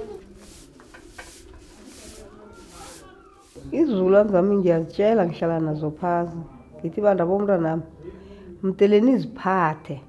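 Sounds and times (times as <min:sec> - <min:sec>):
broom sweeping concrete floor: 0:00.0 - 0:04.0.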